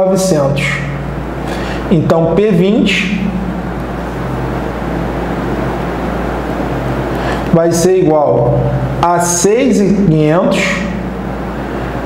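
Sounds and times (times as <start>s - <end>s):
low hum: 0.0s - 12.0s
steady background hiss: 0.0s - 12.0s.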